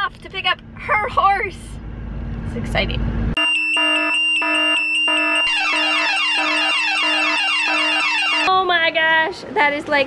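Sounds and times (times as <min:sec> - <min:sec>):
low car cabin rumble: 0:00.0 - 0:03.4
electronic alarm beeping: 0:03.4 - 0:08.5.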